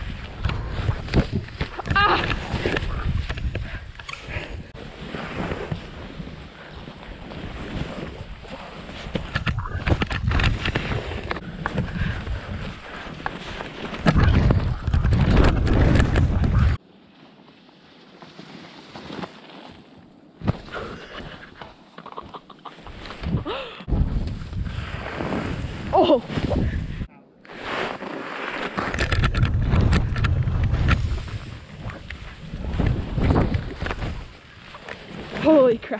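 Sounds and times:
wind buffeting microphone: 0:00.0 - 0:06.6, 0:14.0 - 0:16.8, 0:23.0 - 0:27.1, 0:29.0 - 0:35.5
skis scraping over snow: 0:10.5 - 0:14.1, 0:15.8 - 0:20.0, 0:27.5 - 0:35.9.

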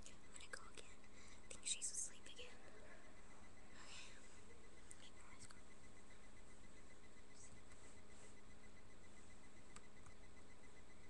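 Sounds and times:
girl whispering: 0:00.0 - 0:02.7, 0:04.9 - 0:05.6
faint steady hiss: 0:00.0 - 0:11.0.

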